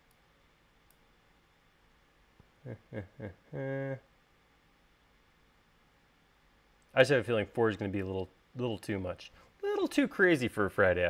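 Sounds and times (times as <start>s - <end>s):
man laughing: 2.6s - 4.0s
man speaking: 7.0s - 11.0s.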